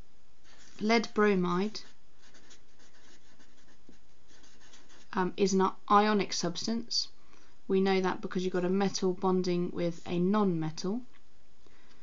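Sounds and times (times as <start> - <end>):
marker scratching on paper: 1.6 - 5.2.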